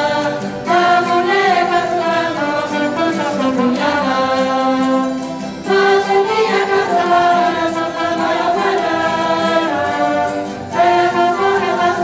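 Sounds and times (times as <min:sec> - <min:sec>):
group of voices singing: 0:00.0 - 0:12.0
live band with horns and guitars: 0:00.0 - 0:12.0.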